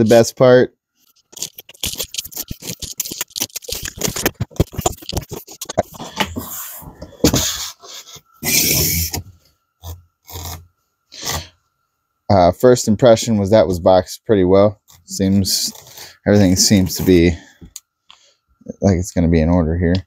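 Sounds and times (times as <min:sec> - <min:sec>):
cardboard scraping and rustling: 0:01.2 - 0:07.6.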